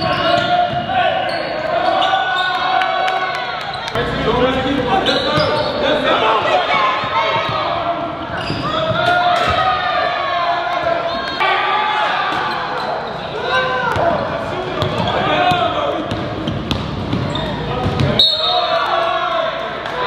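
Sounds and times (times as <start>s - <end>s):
ball bouncing on hardwood court: 14.8s - 18.2s.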